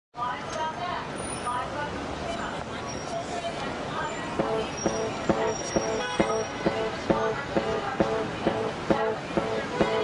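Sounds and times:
sharp ringing strikes: 0:04.4 - 0:10.0.

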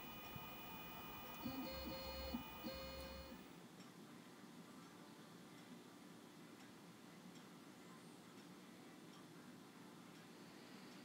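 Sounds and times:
stepper motors whining faintly: 0:00.0 - 0:03.4.

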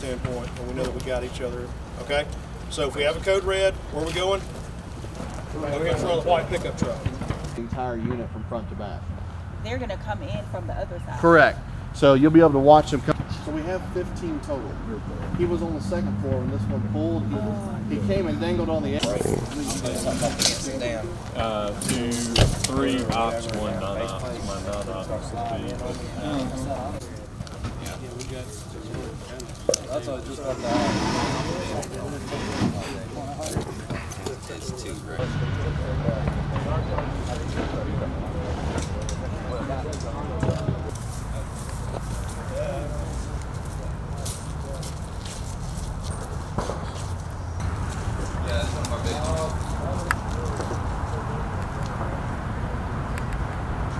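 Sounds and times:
men talking: 0:00.0 - 0:09.4, 0:11.1 - 0:46.6, 0:47.6 - 0:53.0.

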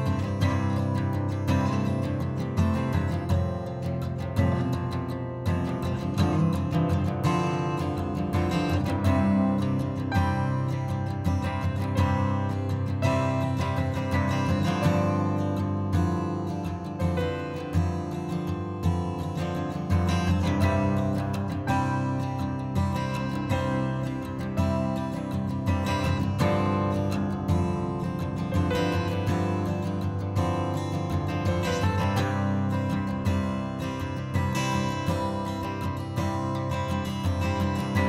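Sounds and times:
strummed acoustic guitar music: 0:00.0 - 0:38.0.

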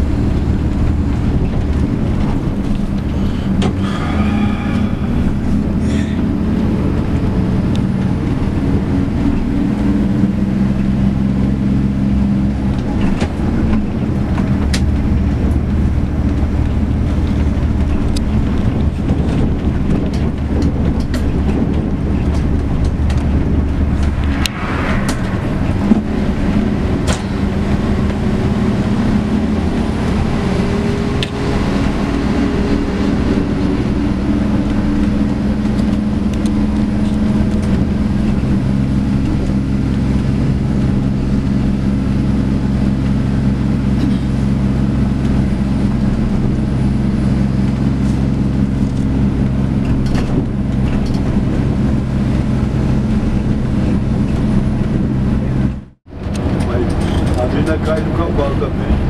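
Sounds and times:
bus engine drone: 0:00.0 - 0:59.0
road noise: 0:00.0 - 0:59.0
knocks and rattles: 0:12.7 - 0:28.2.

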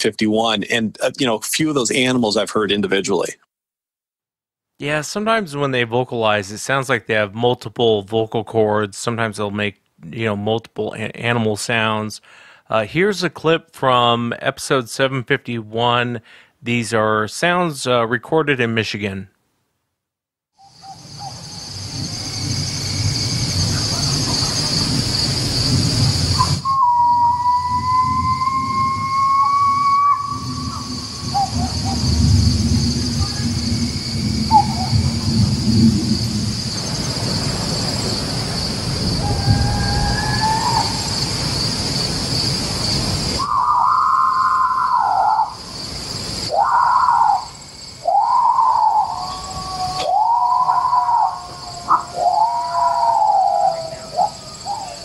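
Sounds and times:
insects chirring: 0:20.6 - 0:55.0
long rising wail: 0:26.4 - 0:37.2, 0:38.8 - 0:41.4, 0:43.4 - 0:45.6, 0:48.1 - 0:55.0
yipping howls: 0:26.8 - 0:32.1, 0:39.2 - 0:41.2, 0:43.4 - 0:45.6, 0:46.5 - 0:55.0
low rumble: 0:27.6 - 0:40.2.

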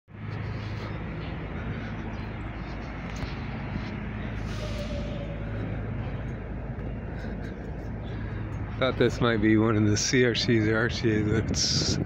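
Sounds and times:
street traffic engine hum: 0:00.1 - 0:12.0.

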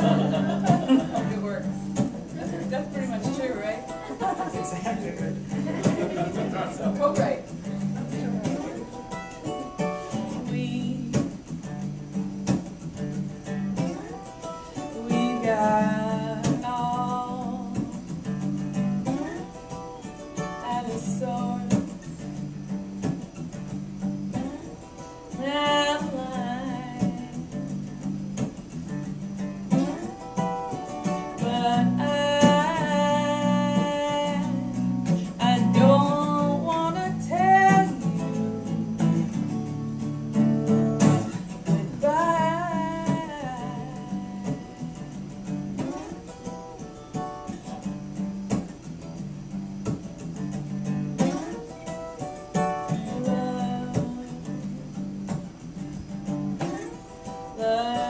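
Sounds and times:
acoustic guitar strumming: 0:00.0 - 0:58.0
woman singing folk song: 0:00.0 - 0:58.0.

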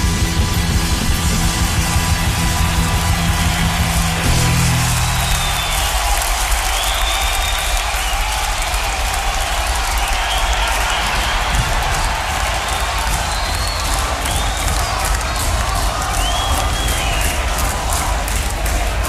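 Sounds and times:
audience cheering and applauding: 0:00.0 - 0:19.0.

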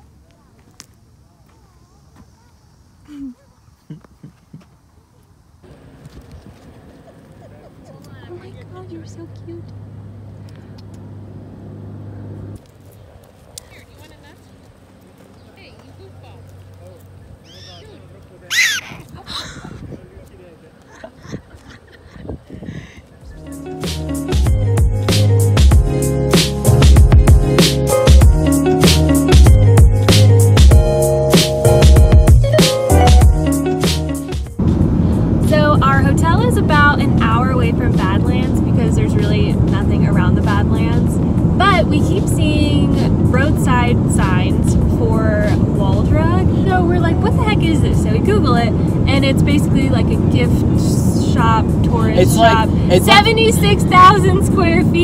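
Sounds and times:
road and engine noise in car: 0:05.4 - 0:13.4, 0:34.6 - 0:55.0
woman talking: 0:07.9 - 0:09.7, 0:35.4 - 0:55.0
prairie dog chirp-like barks: 0:18.5 - 0:19.0.

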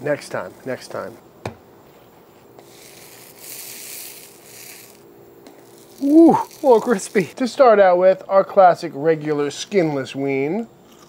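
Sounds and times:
food sizzling on grill: 0:02.7 - 0:07.3.

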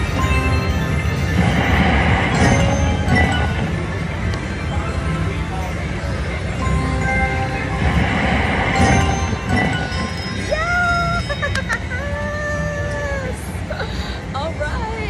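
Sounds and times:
slot machine chimes and jingle: 0:00.0 - 0:12.0
woman exclaiming: 0:10.5 - 0:13.5.

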